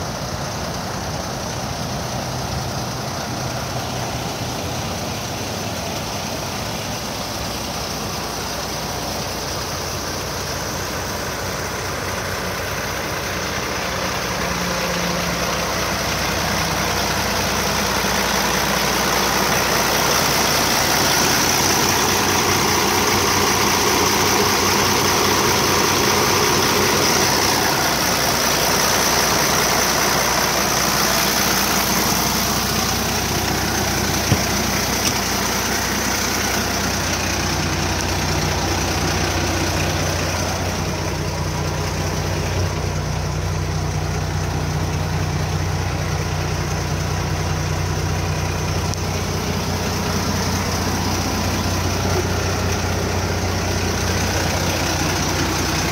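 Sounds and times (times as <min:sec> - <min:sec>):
diesel engine idling: 0:00.0 - 0:55.9.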